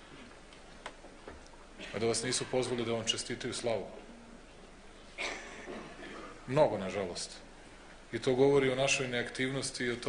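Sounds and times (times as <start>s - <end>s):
man speaking: 1.8s - 4.1s, 6.4s - 7.5s, 8.1s - 10.0s.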